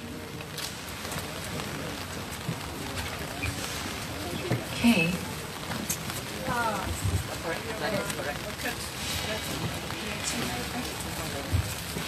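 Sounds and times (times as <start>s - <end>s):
faint murmured voices: 0.0s - 12.0s.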